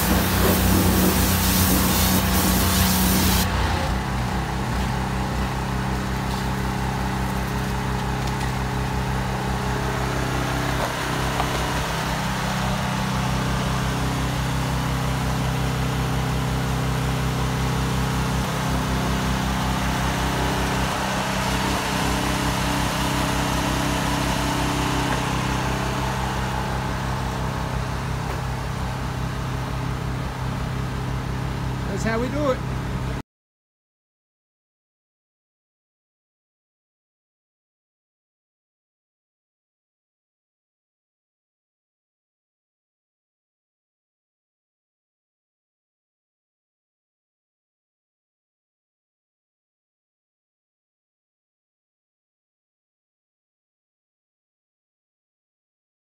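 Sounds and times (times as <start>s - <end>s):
pressure washer spray hissing: 0.0s - 3.5s
engine idling: 0.0s - 33.2s.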